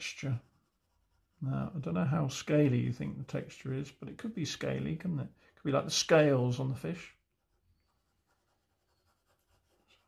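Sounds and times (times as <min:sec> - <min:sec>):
pencil scratching on paper: 0:00.0 - 0:02.8, 0:07.2 - 0:10.0.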